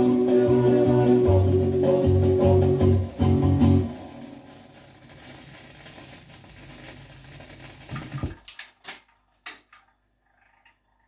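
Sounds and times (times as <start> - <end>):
vinyl record crackle: 0.0 - 8.8.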